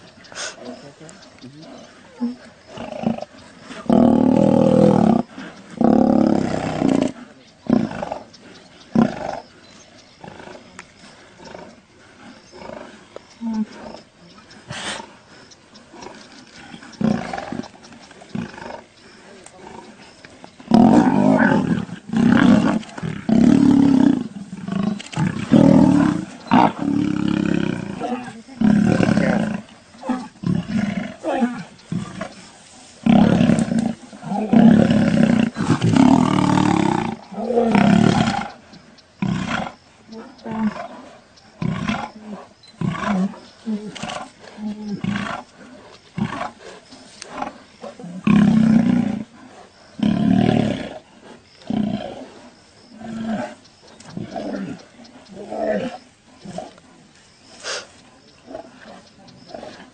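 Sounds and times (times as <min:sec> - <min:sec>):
lions growling in a fight: 0:00.1 - 0:59.9.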